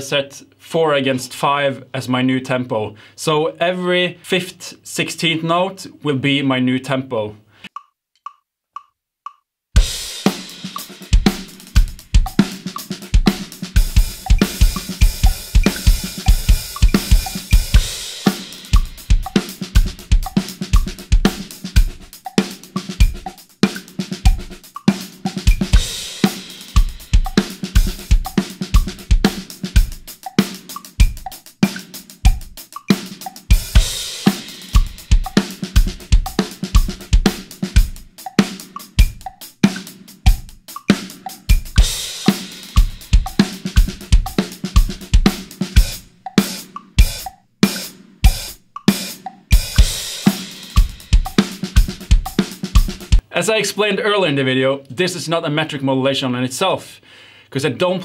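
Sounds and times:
drum kit groove: 9.8 - 53.6.

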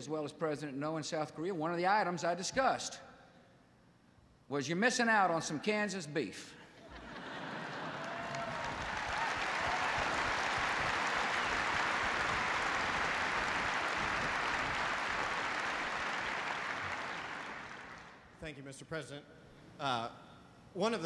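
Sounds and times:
large audience applauding: 7.4 - 18.3.

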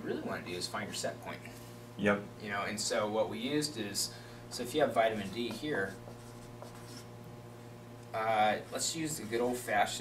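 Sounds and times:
low steady hum: 0.0 - 10.0
marker writing on whiteboard: 5.1 - 7.1.

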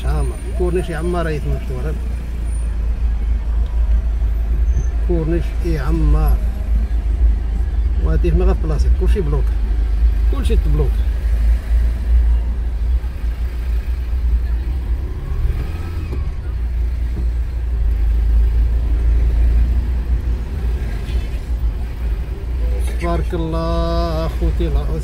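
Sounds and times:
car engine rumble: 0.0 - 25.0
road noise inside car: 0.0 - 25.0.

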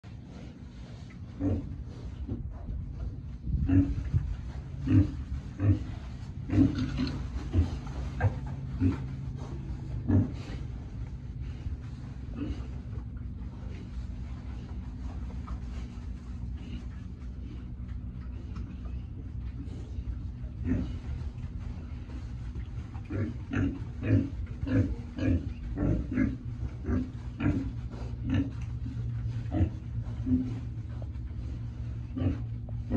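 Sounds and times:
low hum: 0.0 - 32.9
young pigs grunting: 1.0 - 32.9.

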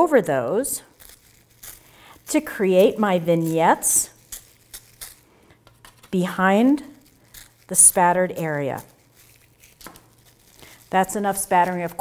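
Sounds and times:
toothbrush bristles flicking: 0.8 - 5.3, 6.0 - 12.0.

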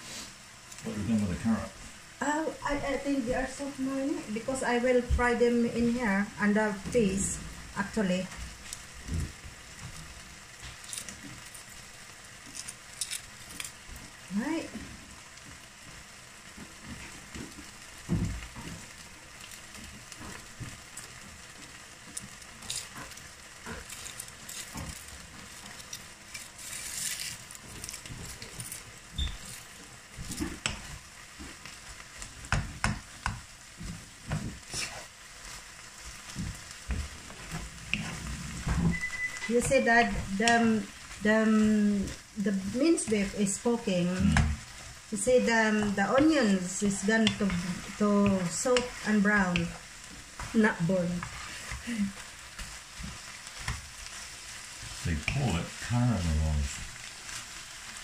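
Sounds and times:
meat sizzling in a pan: 0.0 - 58.0.

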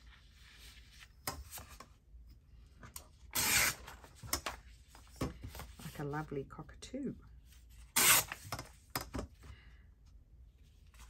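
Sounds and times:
paper rustling: 3.8 - 6.0.

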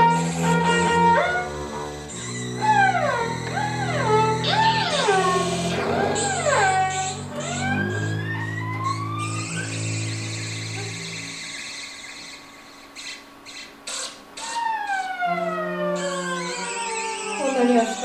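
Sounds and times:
low bowed cello notes: 0.0 - 11.6
siren-like sliding tones: 0.0 - 18.0.

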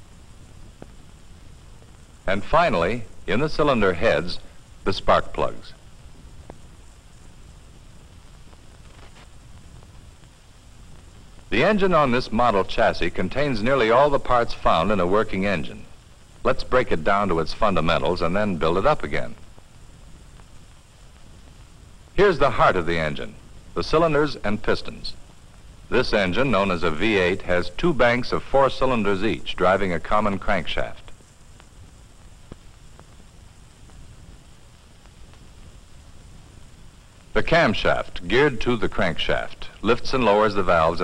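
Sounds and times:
film soundtrack hiss: 0.0 - 41.0
narration: 2.2 - 6.0, 11.4 - 19.6, 22.1 - 31.2, 37.3 - 41.0
faint tick: 6.4 - 6.6, 31.1 - 34.0.

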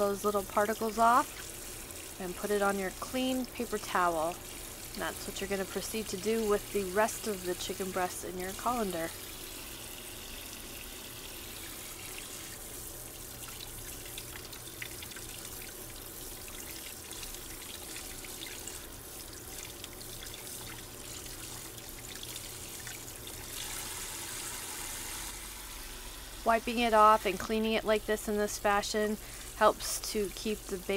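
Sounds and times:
faucet running into metal sink: 0.0 - 30.9.

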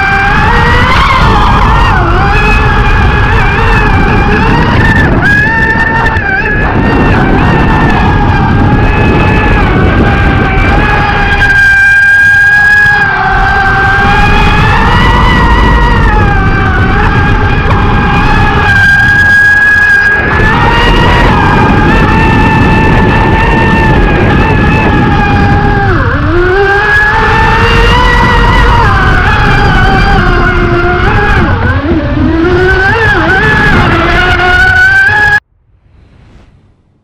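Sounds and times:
high-pitched motor whine: 0.0 - 36.5.

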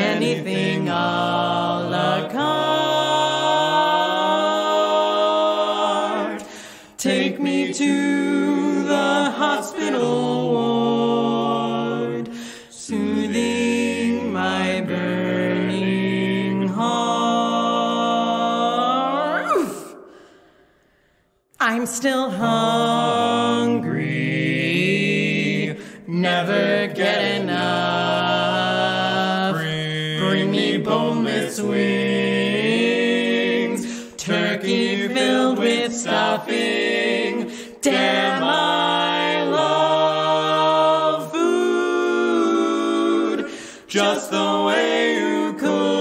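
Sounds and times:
barbershop quartet singing: 0.0 - 20.3, 21.9 - 46.0.

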